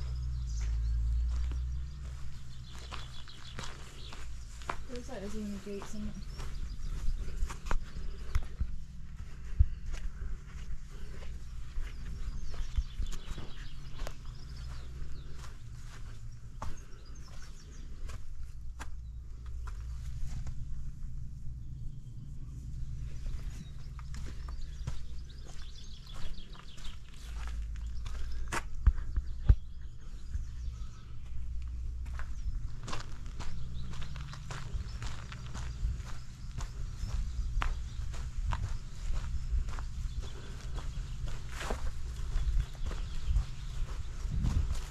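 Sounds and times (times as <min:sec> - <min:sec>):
footsteps: 0:00.0 - 0:21.5, 0:22.5 - 0:44.9
faint bird chirps: 0:00.0 - 0:44.9
wind rumble on microphone: 0:00.0 - 0:44.9.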